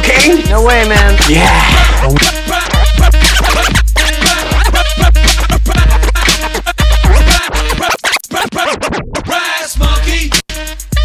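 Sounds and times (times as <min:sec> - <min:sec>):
turntable scratching: 0:00.0 - 0:10.5
hip hop beat: 0:00.0 - 0:11.0.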